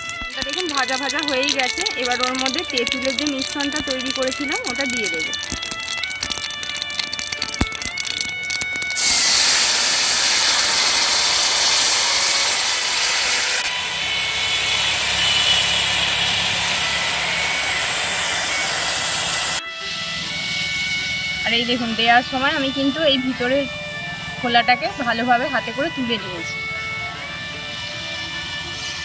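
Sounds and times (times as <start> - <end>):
liquid poured into hot wok: 0.0 - 19.6
loud sizzle and bubbling: 0.0 - 25.3.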